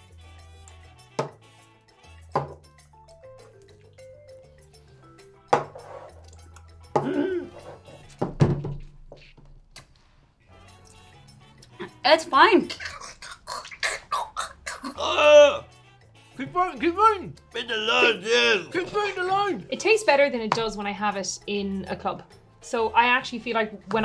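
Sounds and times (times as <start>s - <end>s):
shot glasses knocking on table: 1.2s - 1.4s, 2.3s - 2.6s, 5.5s - 5.8s
person grunting: 14.1s - 15.7s, 18.2s - 18.7s.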